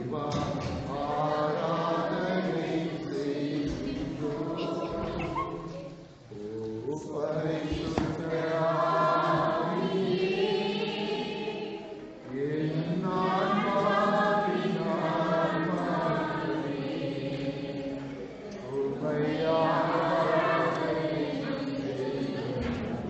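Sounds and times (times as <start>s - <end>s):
congregation singing: 0.0s - 23.0s.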